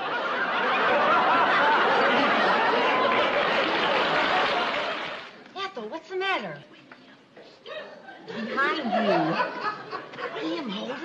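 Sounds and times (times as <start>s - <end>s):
audience laughing: 0.0s - 5.3s, 7.7s - 11.0s.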